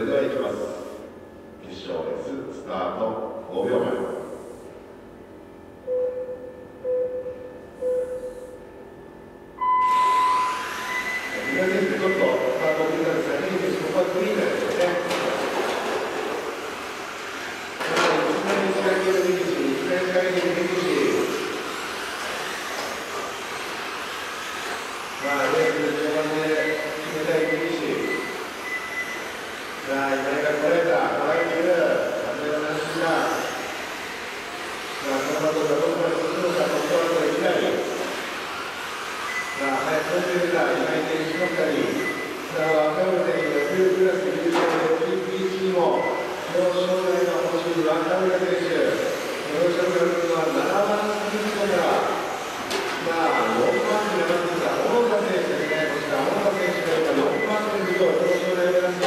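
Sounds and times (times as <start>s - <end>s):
man talking: 0.0s - 0.9s, 1.6s - 4.4s, 11.4s - 15.4s, 17.8s - 21.4s, 25.2s - 28.2s, 29.9s - 33.4s, 35.0s - 38.0s, 39.6s - 52.2s, 53.0s - 59.0s
short low beeps: 5.8s - 8.7s, 9.3s - 13.0s, 46.0s - 46.4s
long higher start tone: 9.6s - 11.5s
electric motors whining: 9.6s - 59.0s
radio-controlled cars whirring: 10.6s - 27.7s, 28.4s - 31.7s, 32.4s - 44.3s, 45.0s - 57.7s.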